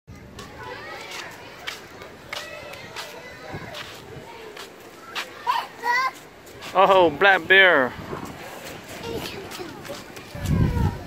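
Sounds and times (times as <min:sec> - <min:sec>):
children chattering: 0:00.1 - 0:11.0.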